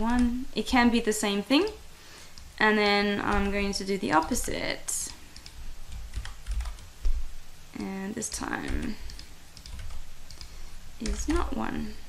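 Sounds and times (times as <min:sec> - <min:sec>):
light keyboard keystrokes: 0:08.3 - 0:11.4.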